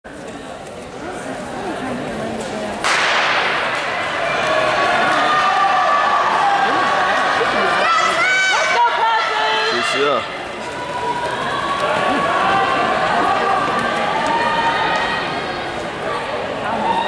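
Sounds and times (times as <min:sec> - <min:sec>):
starting gun shot echoing: 0:02.8 - 0:03.8
spectators cheering and yelling: 0:03.4 - 0:17.0.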